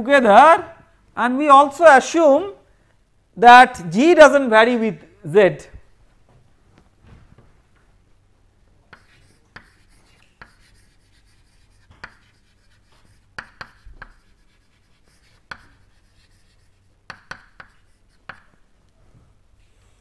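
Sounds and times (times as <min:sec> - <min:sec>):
chalk tapping and scraping on blackboard: 0:08.9 - 0:18.6.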